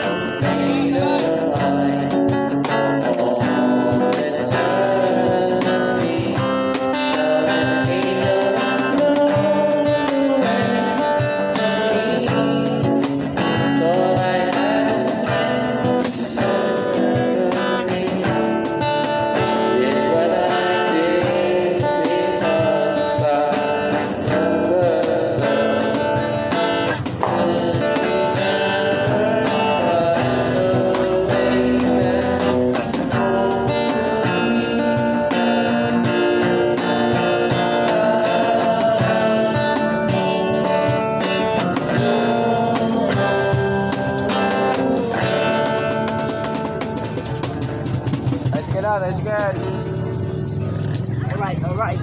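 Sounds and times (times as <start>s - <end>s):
man singing: 0.0s - 47.8s
acoustic guitar strumming chords: 0.0s - 52.0s
cajon beat: 0.0s - 52.0s.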